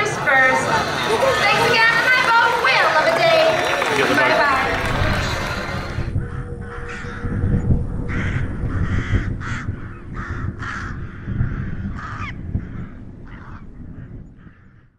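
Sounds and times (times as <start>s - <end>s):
low rumble: 3.6s - 14.9s
crow cawing: 8.1s - 13.7s.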